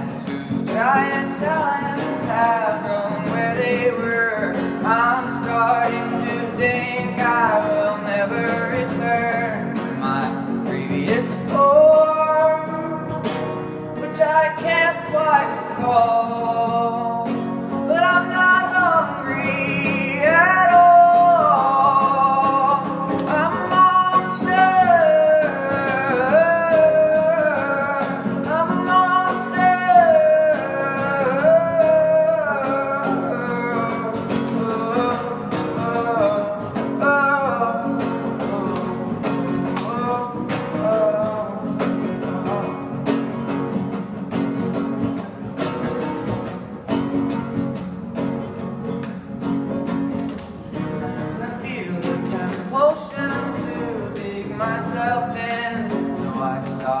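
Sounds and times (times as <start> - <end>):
person singing: 0.0 - 13.4, 14.0 - 43.6, 50.2 - 57.0
plucked guitar: 0.0 - 57.0.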